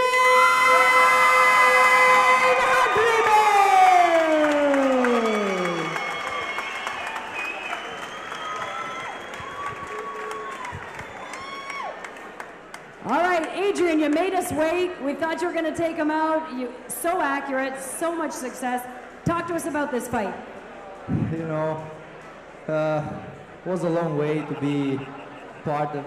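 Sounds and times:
crowd cheering: 0.0 - 13.5, 24.0 - 26.0
applause: 2.1 - 14.3.

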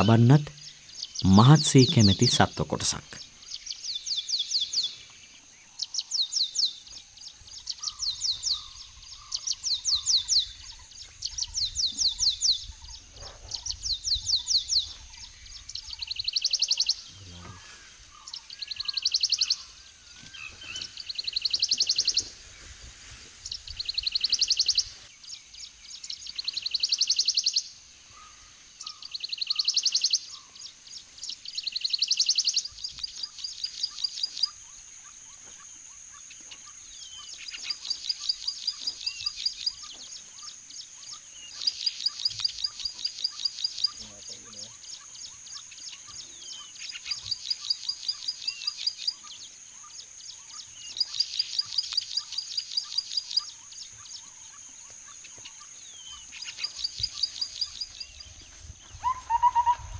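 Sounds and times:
bird singing high phrase: 0.0 - 22.3, 55.3 - 59.9.

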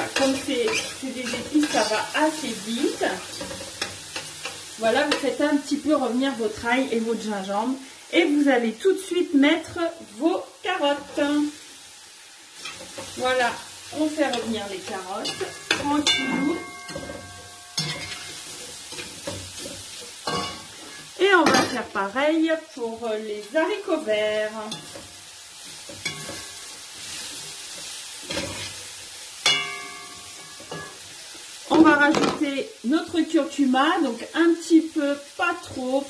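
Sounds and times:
vegetables sizzling in hot oil: 0.0 - 36.0.

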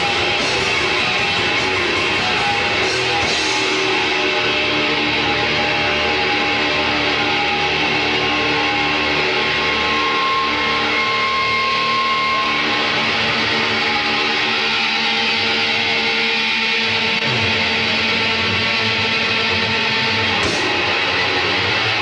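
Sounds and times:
bass and drums: 0.0 - 22.0
distorted electric guitars: 0.0 - 22.0.

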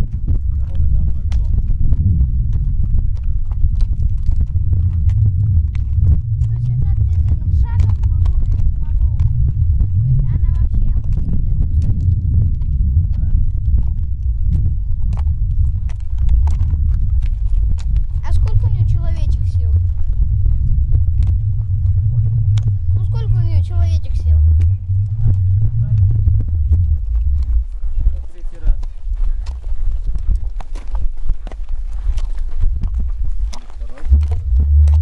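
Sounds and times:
heavy low rumble: 0.0 - 35.0
horse hooves clip-clopping on stony track: 0.0 - 35.0.

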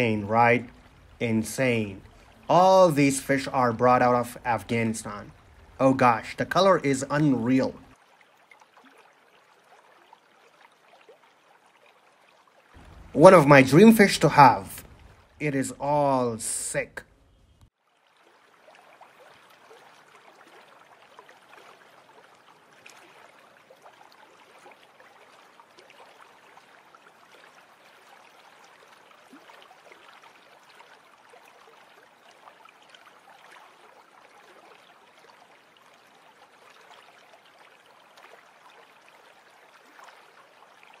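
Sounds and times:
aquarium water bubbling: 0.0 - 26.8.

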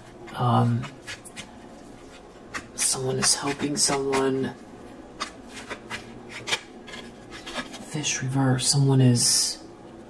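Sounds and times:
playing cards sliding: 5.2 - 7.9.

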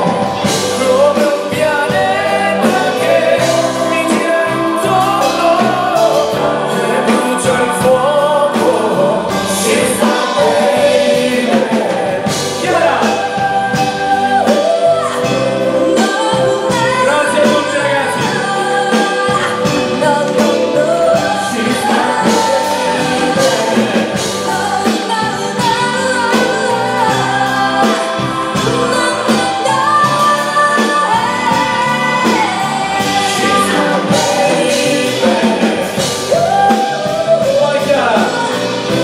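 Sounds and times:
pop band playing: 0.0 - 39.0
woman singing into a microphone: 0.0 - 39.0.

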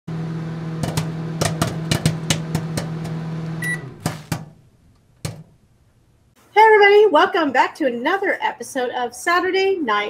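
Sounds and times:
microwave oven humming: 0.1 - 6.3
microwave beep: 3.5 - 4.3
sharp pops: 4.0 - 4.6.

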